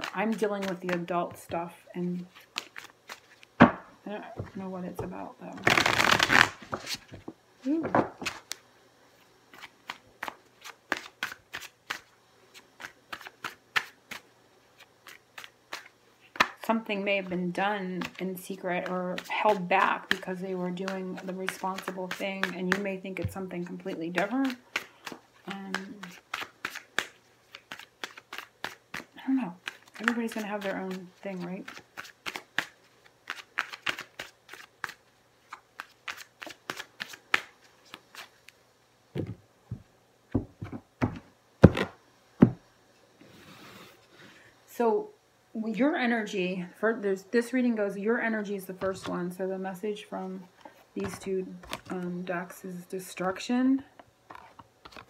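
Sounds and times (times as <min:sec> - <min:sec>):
cards being shuffled: 0:00.0 - 0:01.5, 0:02.1 - 0:08.6, 0:09.5 - 0:14.2, 0:14.8 - 0:16.7, 0:17.8 - 0:38.6, 0:40.4 - 0:42.6, 0:54.3 - 0:55.0.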